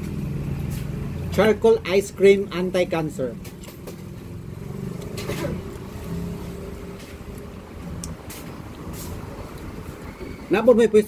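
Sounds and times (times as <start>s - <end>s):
low motor hum: 3.4s - 10.4s
wet mouth clicks: 7.3s - 8.2s.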